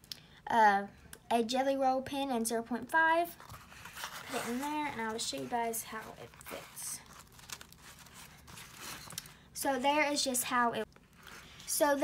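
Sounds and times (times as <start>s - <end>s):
rustling and scraping of nylon: 3.4s - 9.8s.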